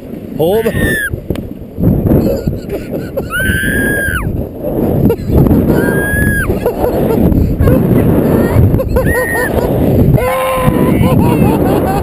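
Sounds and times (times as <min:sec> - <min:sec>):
wind and sliding noise: 0:00.0 - 0:12.0
rider yelping: 0:00.6 - 0:01.1
person whooping: 0:00.7 - 0:01.1, 0:03.3 - 0:04.3, 0:05.7 - 0:06.5, 0:08.4 - 0:11.4.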